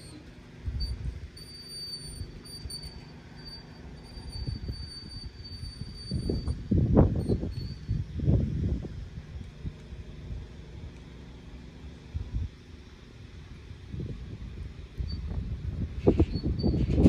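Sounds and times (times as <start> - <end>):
wind buffeting microphone: 0.5 - 1.4, 4.0 - 10.9, 12.1 - 17.0.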